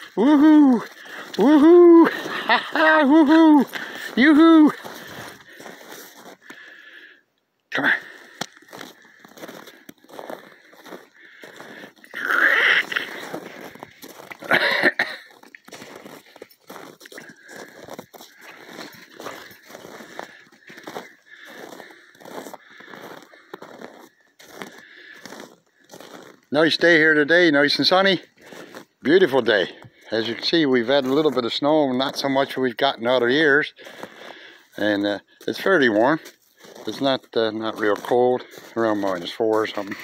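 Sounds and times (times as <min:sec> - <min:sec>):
boots crunching on snow: 0:00.0 - 0:06.9, 0:08.0 - 0:32.4, 0:33.8 - 0:40.0.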